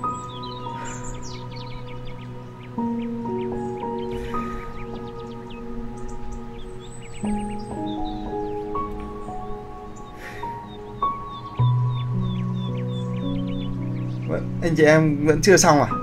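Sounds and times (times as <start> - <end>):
birds chirping: 0.0 - 16.0
calm new-age music: 0.0 - 16.0.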